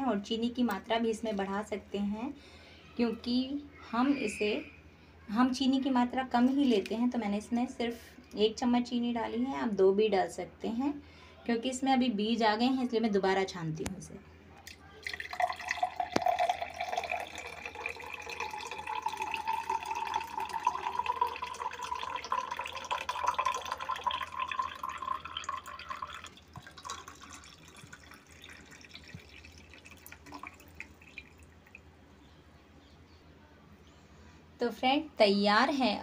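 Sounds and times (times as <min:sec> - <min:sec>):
faint dripping: 0:14.6 - 0:31.9
juice pouring into a glass: 0:14.7 - 0:31.9.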